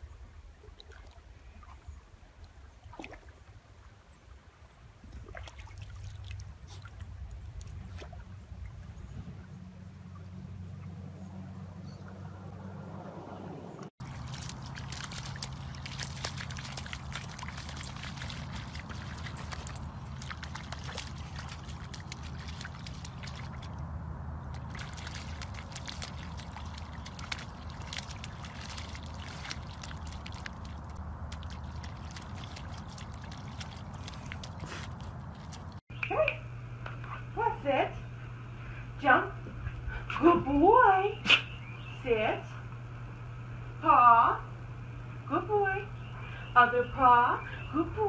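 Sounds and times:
paws splashing through mud: 14.0 - 35.8
person talking: 37.3 - 38.0.

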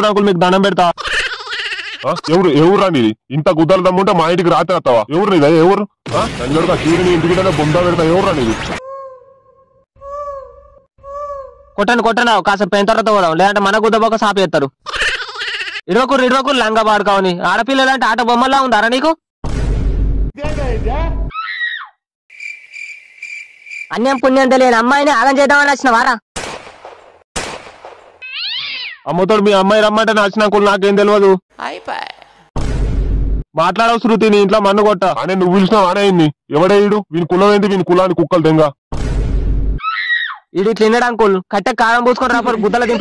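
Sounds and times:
cat meowing: 28.2 - 29.0.

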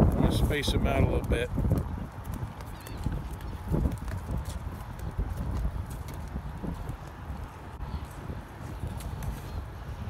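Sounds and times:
footsteps on wooden boards: 1.5 - 9.6.

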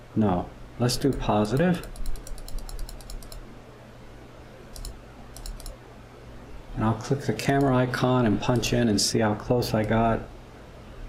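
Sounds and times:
rapid computer clicking: 0.9 - 3.5, 4.7 - 5.8, 7.3 - 8.9.

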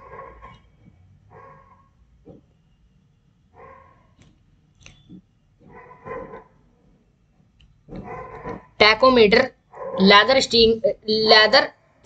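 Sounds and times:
dog barking faintly: 0.0 - 0.7, 5.7 - 6.6, 8.0 - 8.8, 9.8 - 10.0.

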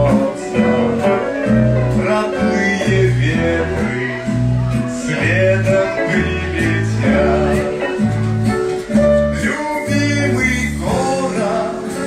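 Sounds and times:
bass line: 0.0 - 12.0
live band music: 0.0 - 12.0.

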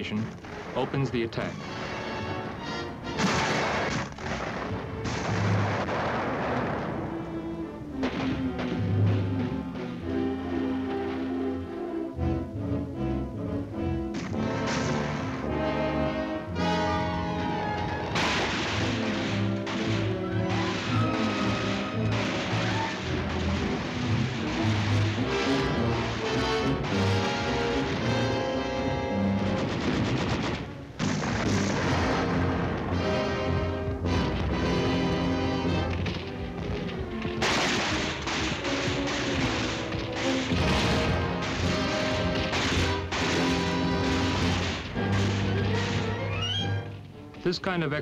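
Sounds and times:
gunfire: 0.0 - 11.8, 14.1 - 46.2
artillery blasts: 0.0 - 12.0, 14.1 - 47.1
background music: 0.0 - 48.0.

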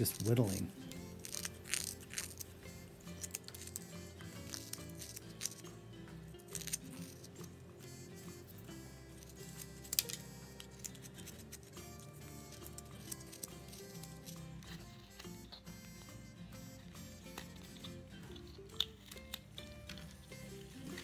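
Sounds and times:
background music: 0.0 - 21.0
carving knife cutting wood: 0.0 - 21.0.

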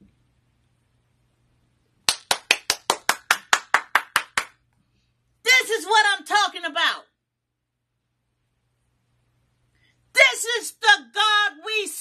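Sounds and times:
person clapping hands quickly: 2.0 - 4.6.

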